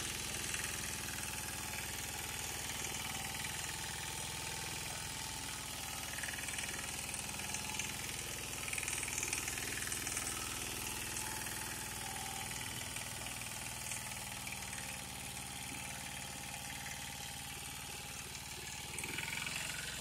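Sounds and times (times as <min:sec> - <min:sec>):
weeder engine running: 0:00.0 - 0:20.0
tines tilling wet soil: 0:13.4 - 0:20.0.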